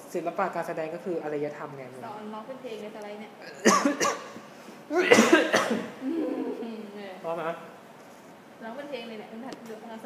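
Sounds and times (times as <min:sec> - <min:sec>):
person coughing: 0:03.5 - 0:04.3, 0:05.0 - 0:06.0.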